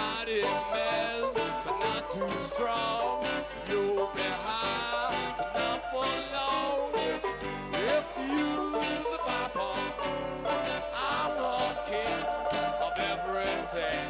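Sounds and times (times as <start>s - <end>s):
live band playing swing: 0.0s - 14.0s
plucked double bass: 0.0s - 14.0s
strummed strings: 0.0s - 14.0s.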